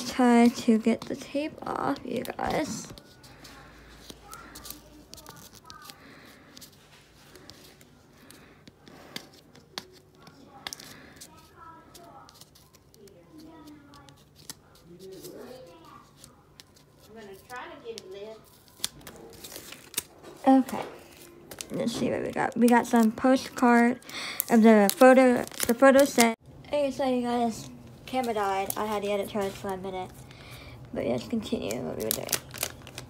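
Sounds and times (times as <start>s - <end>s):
tape tearing: 18.5s - 21.8s, 24.8s - 26.4s.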